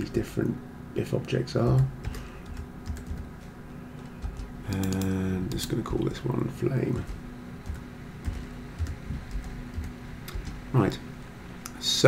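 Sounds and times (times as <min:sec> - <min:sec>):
faint steady hum: 0:00.0 - 0:12.0
computer keyboard keystrokes: 0:01.7 - 0:03.3, 0:04.0 - 0:05.2, 0:07.0 - 0:10.6.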